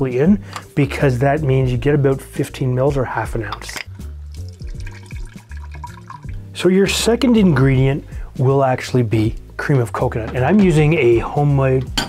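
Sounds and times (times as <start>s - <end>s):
background music with bass line: 0.0s - 12.0s
juice dripping into a glass: 3.8s - 6.5s.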